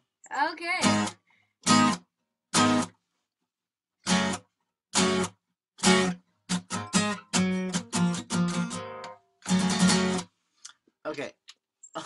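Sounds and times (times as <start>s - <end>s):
acoustic guitar strumming chords: 0.7s - 3.0s, 4.0s - 10.3s.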